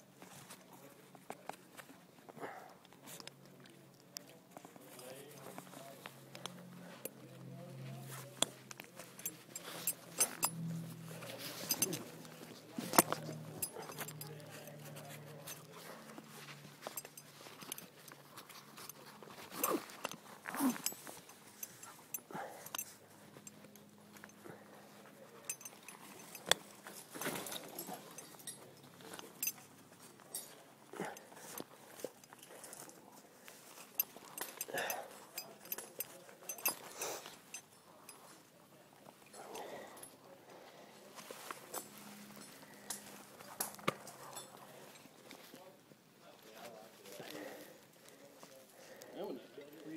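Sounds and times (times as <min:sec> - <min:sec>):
carabiners clinking: 0:03.0 - 0:40.4, 0:41.2 - 0:45.7.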